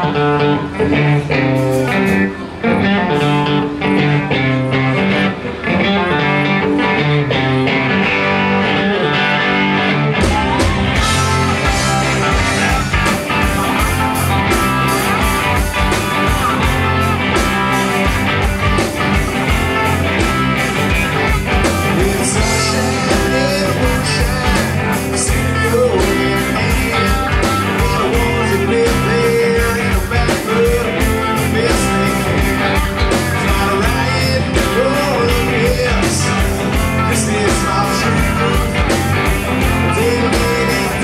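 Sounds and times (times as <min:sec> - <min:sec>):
rock band playing: 0:00.0 - 0:41.0
man singing: 0:21.6 - 0:41.0.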